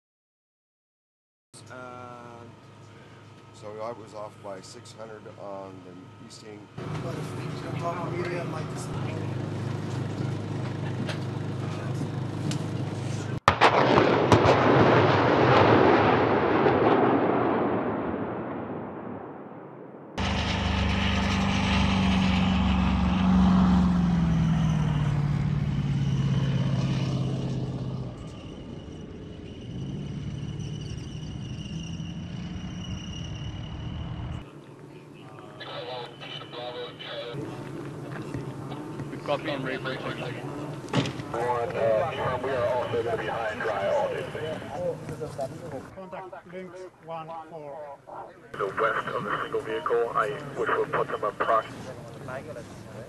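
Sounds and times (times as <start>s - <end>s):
tracked vehicle engine driving: 5.6s - 13.5s, 20.2s - 45.9s, 48.6s - 53.0s
rocket launch roar: 13.5s - 30.0s, 39.5s - 44.9s.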